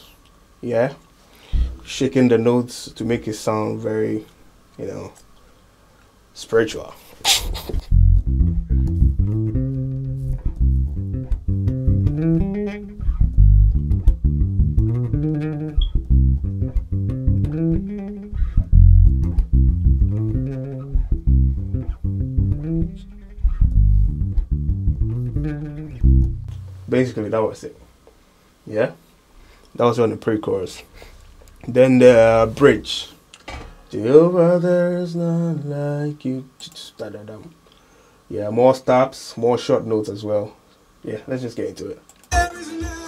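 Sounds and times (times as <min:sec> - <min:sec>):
electric bass guitar with vibrato: 0:07.8 - 0:27.1.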